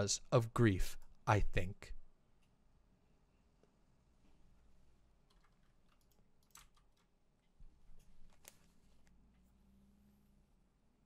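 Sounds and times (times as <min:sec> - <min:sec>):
faint keyboard clicks: 0:05.2 - 0:07.6.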